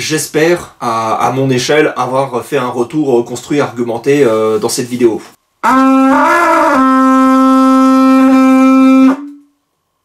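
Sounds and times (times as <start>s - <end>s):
animal horn blown: 5.6s - 9.6s.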